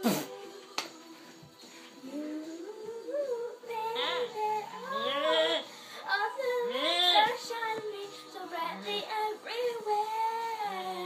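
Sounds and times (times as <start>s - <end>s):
girl singing into a microphone: 2.0s - 11.0s.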